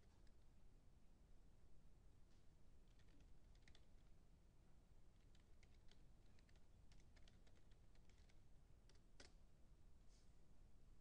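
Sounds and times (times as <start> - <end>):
typing on a computer keyboard: 2.9 - 4.1, 5.2 - 9.4.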